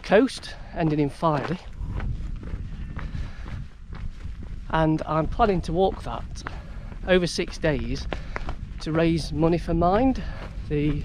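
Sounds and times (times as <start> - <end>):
footsteps on dirt track: 0.0 - 11.0
wind rumbling on microphone: 0.0 - 11.0.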